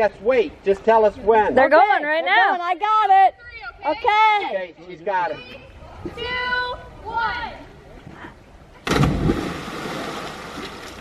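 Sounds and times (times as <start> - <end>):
loud splash into water: 8.8 - 11.0.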